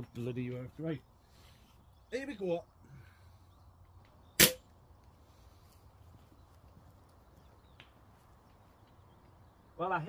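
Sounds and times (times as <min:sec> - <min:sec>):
rifle shot: 0:04.4 - 0:04.6.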